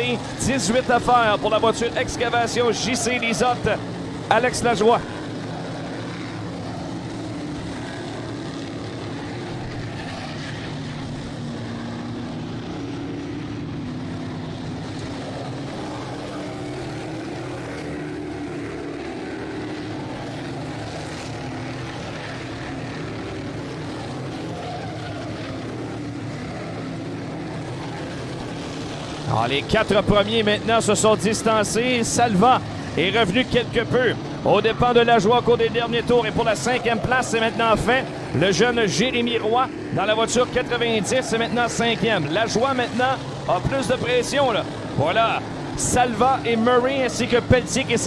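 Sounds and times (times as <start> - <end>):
race car engines droning: 0.0 - 48.0.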